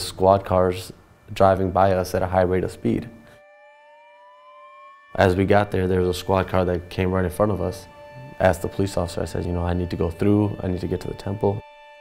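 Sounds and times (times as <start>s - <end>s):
steady held tone: 0.0s - 12.0s
police siren rising in pitch: 3.2s - 5.6s.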